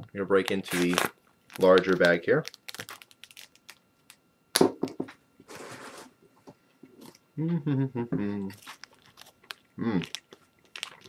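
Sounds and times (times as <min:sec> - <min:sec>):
knife cutting plastic bag: 0:00.5 - 0:03.6
plastic being slit: 0:00.5 - 0:03.8.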